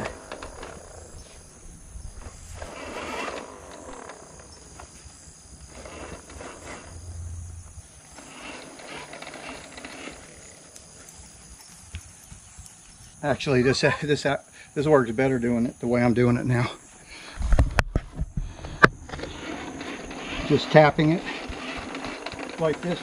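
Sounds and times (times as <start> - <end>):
rake scraping through soil: 2.2 - 11.2, 19.1 - 23.0.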